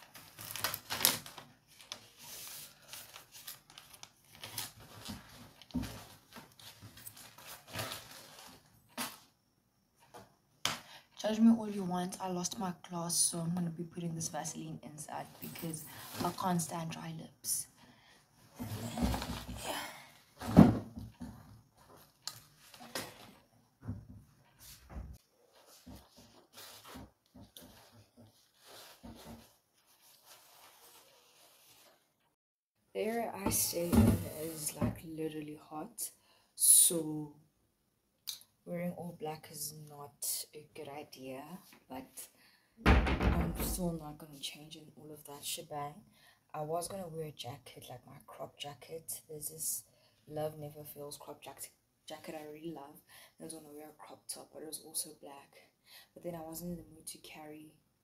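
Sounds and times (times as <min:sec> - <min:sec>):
paper crinkling: 0:00.0 - 0:09.2
paper rustling: 0:00.0 - 0:09.2, 0:25.5 - 0:32.0.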